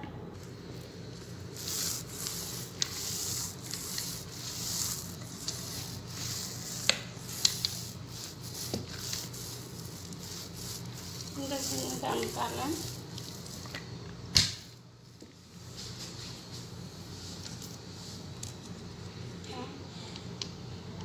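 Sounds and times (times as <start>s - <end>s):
rolling pin rubbing dough: 0.8s - 14.0s.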